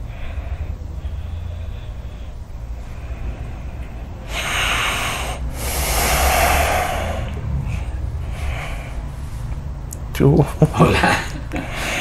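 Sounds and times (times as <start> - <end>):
man breathing deeply: 0.0 - 9.9, 11.5 - 12.0.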